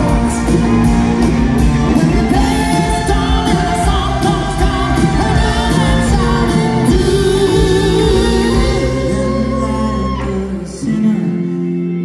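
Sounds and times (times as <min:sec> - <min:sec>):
live rock band playing: 0:00.0 - 0:12.0
man singing lead vocal: 0:00.0 - 0:12.0.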